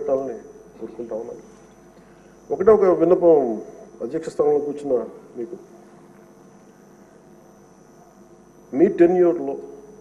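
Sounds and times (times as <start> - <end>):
man speaking: 0.0 - 1.5, 2.5 - 5.7
steady low hum: 0.0 - 10.0.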